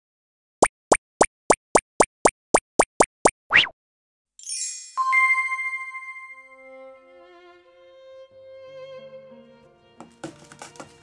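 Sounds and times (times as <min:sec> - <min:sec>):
cartoon popping blips: 0:00.6 - 0:03.8
cartoon rising swoop: 0:03.5 - 0:03.8.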